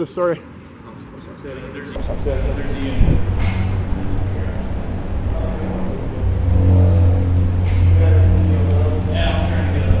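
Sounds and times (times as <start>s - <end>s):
loud steady low hum: 2.0s - 10.0s.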